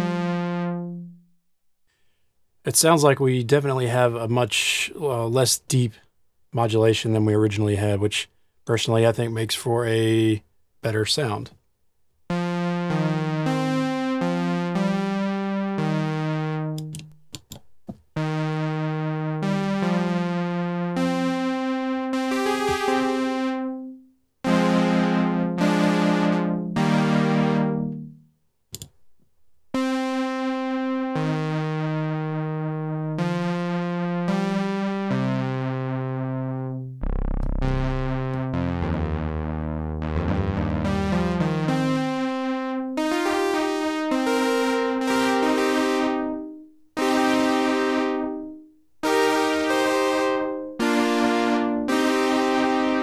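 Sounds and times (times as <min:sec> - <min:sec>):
synthesizer pad chords with chorus: 0:00.0 - 0:01.2, 0:12.3 - 0:17.1, 0:18.2 - 0:28.2, 0:29.8 - 0:53.0.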